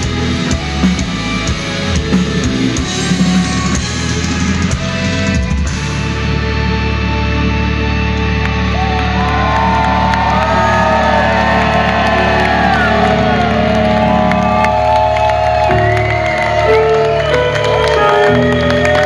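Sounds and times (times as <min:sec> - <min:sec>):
metal band playing held chords: 0:00.0 - 0:19.0
crowd cheering and whooping: 0:08.3 - 0:19.0.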